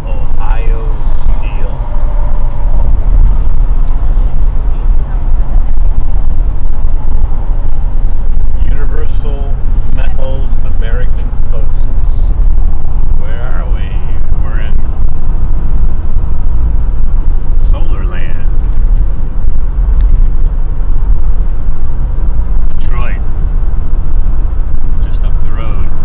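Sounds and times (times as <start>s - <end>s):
road and wind noise in car: 0.0s - 26.0s.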